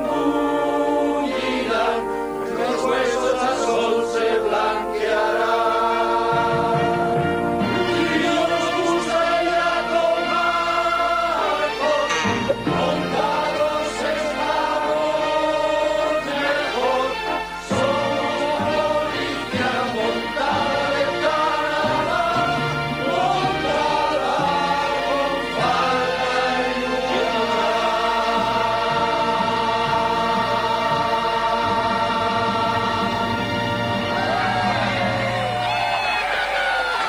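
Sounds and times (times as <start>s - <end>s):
choir holding sung note: 0.0s - 37.0s
musical backing: 0.0s - 37.0s.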